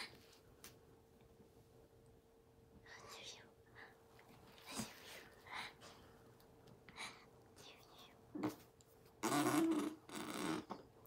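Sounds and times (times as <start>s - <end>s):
faint steady hum: 0.0s - 11.0s
person whispering: 2.8s - 4.0s, 6.9s - 8.6s.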